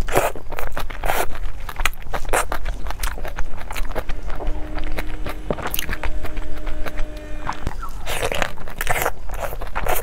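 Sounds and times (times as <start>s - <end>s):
wet crunching chews: 0.0s - 4.1s.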